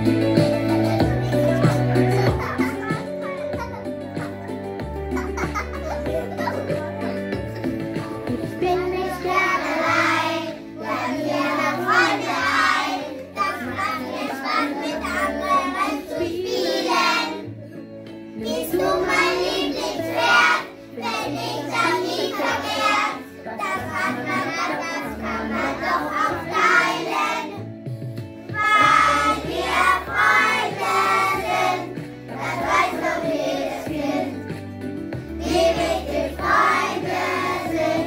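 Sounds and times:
instrumental accompaniment with bass: 0:00.0 - 0:14.2, 0:25.2 - 0:38.0
children singing: 0:08.0 - 0:17.5, 0:18.4 - 0:27.6, 0:28.6 - 0:34.5, 0:35.3 - 0:38.0.

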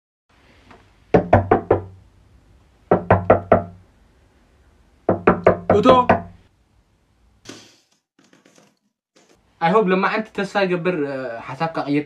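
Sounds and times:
knocking on hollow surface: 0:01.2 - 0:02.0, 0:02.9 - 0:03.8, 0:05.1 - 0:06.4.

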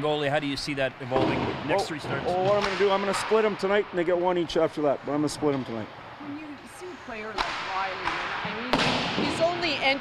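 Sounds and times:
coach speaking: 0:00.0 - 0:05.9.

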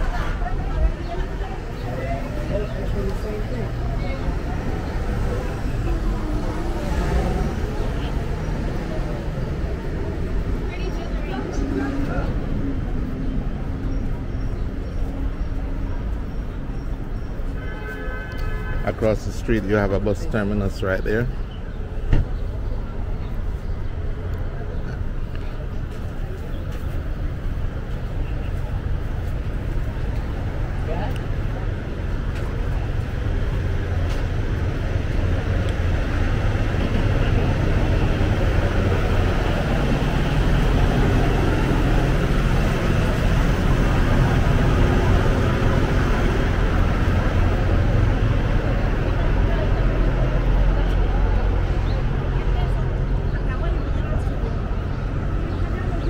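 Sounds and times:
city traffic rumble: 0:00.0 - 0:56.0.

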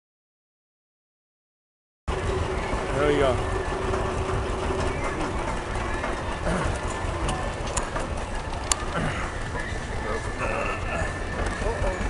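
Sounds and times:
steady low rumble: 0:02.1 - 0:12.0.

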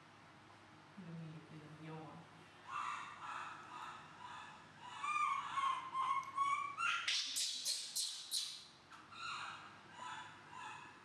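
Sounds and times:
baby monkey crying: 0:02.7 - 0:08.6.

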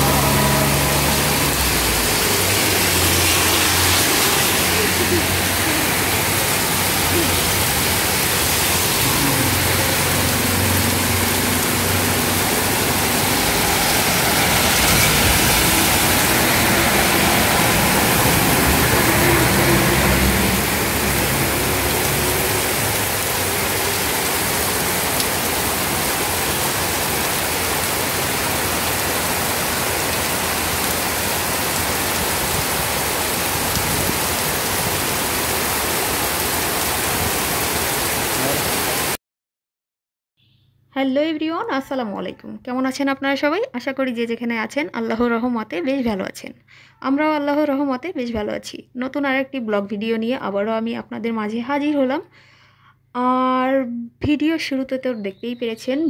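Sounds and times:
heavy rain on pavement: 0:00.0 - 0:39.2
vehicles passing on wet road: 0:00.0 - 0:39.2.

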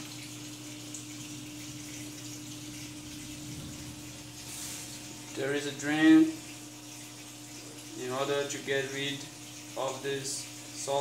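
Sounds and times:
water running: 0:00.0 - 0:11.0.

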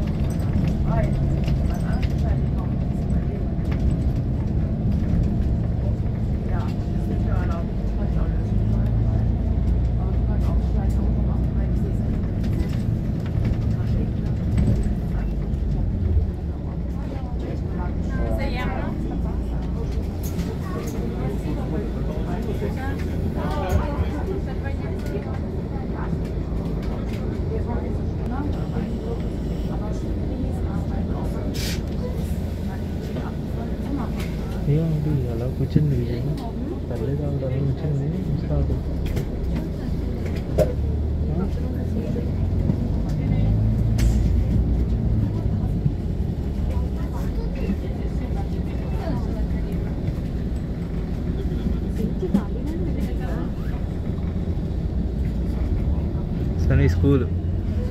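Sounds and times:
bus engine rumble: 0:00.0 - 0:57.9
faint voices of passengers: 0:00.0 - 0:57.9
people talking: 0:00.0 - 0:57.9
tyres on road: 0:00.0 - 0:57.9.

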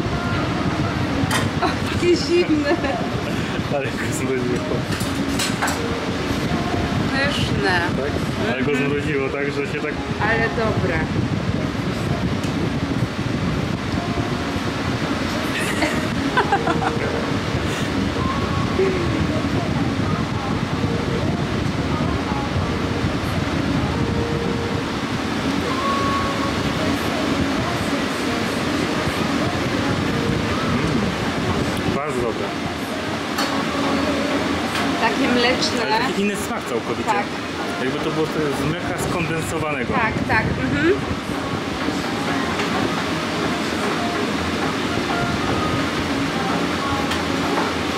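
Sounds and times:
low mechanical rumble: 0:00.0 - 0:47.9
steady tones: 0:00.0 - 0:47.9
voices talking: 0:00.0 - 0:47.9.

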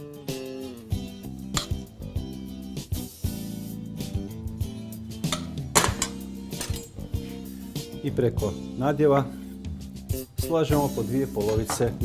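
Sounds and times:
background music: 0:00.0 - 0:12.0
spoon clinking on metal tin: 0:05.3 - 0:07.0.

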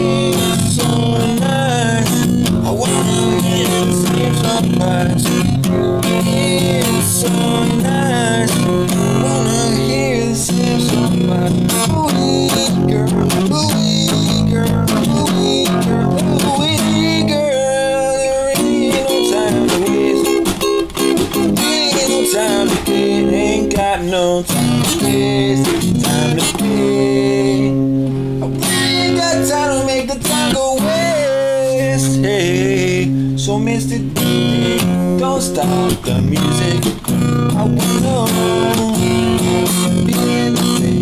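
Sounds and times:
acoustic guitar strumming: 0:00.0 - 0:41.0
person singing: 0:00.0 - 0:41.0.

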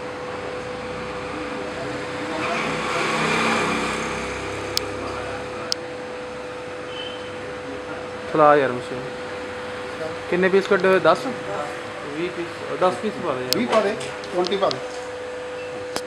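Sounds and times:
wire-forming machine humming: 0:00.0 - 0:16.0.

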